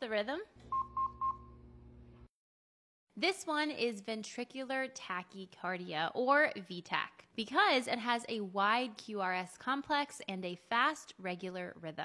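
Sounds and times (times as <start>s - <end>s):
defibrillator heartbeat beeps: 0.7s - 1.6s.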